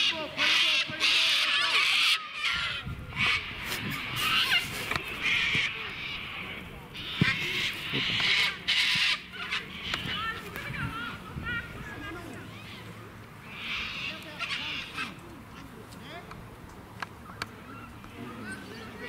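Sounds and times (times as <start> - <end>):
harsh rasping bird calls: 0.0 - 15.8
faint voices: 0.0 - 19.0.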